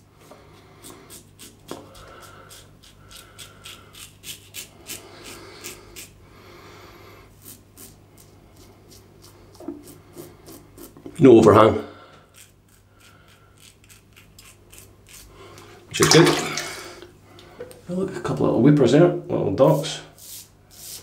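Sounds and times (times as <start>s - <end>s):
razor scraping stubble: 0.8s - 6.2s, 7.3s - 11.6s, 12.2s - 15.4s.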